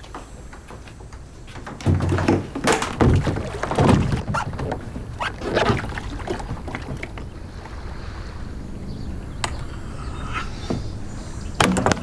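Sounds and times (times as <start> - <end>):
paddle splashing water: 0.0 - 9.8
steady wash of water: 2.5 - 12.0.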